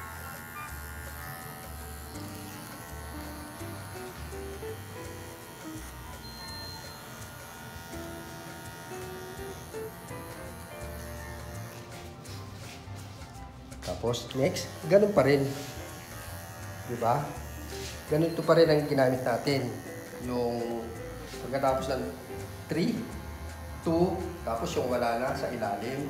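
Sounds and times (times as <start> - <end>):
background music with bass line: 0.0 - 26.0
electric hair clipper buzzing: 0.0 - 26.0.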